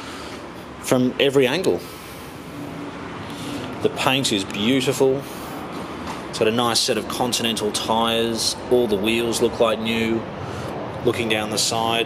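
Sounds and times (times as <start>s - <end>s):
man talking: 0.8s - 1.9s, 3.8s - 5.4s, 6.3s - 10.3s, 11.0s - 12.0s.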